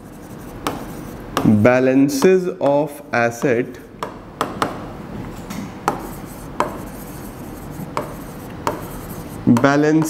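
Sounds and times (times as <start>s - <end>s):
chalk scratching on blackboard: 0.0s - 1.6s, 5.9s - 9.8s
chalk tapping on blackboard: 0.0s - 4.8s, 5.8s - 10.0s.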